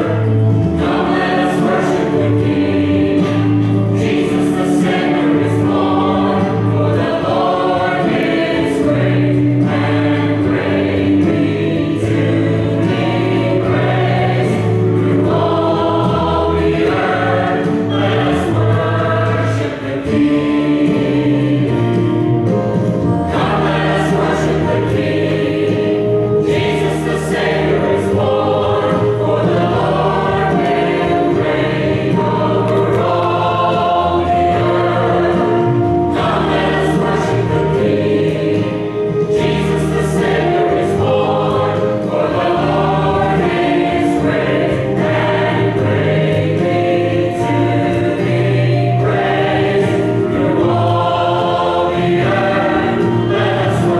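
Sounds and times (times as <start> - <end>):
mixed choir singing in harmony: 0.0 - 53.9.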